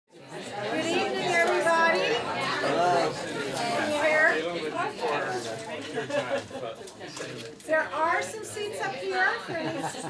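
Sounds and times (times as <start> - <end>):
indistinct chatter of people: 0.1 - 10.0.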